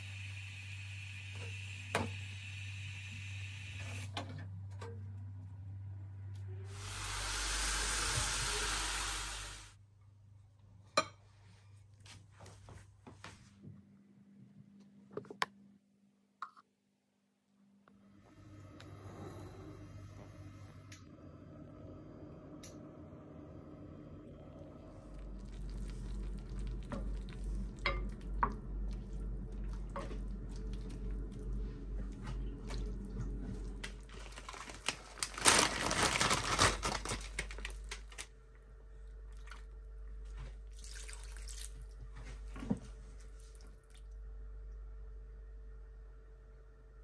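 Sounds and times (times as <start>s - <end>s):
low steady hum: 0.0s - 8.7s, 17.2s - 47.0s
steady hiss: 6.7s - 9.8s
wooden spoon stirring in pot: 25.2s - 34.3s.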